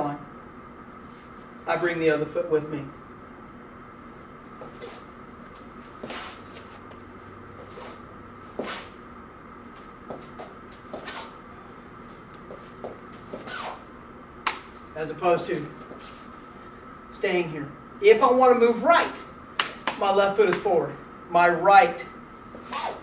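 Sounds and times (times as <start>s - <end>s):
faint hum: 0.0s - 23.0s
shoes scuffing on rubber mat: 4.5s - 7.0s, 7.6s - 9.0s, 9.7s - 11.4s, 12.0s - 13.9s, 15.6s - 16.3s, 22.5s - 23.0s.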